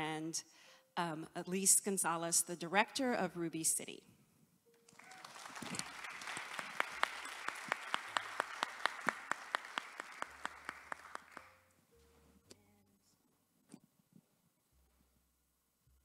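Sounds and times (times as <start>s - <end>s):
one person's sharp regular claps: 4.9s - 11.5s
audience applauding: 4.9s - 11.6s.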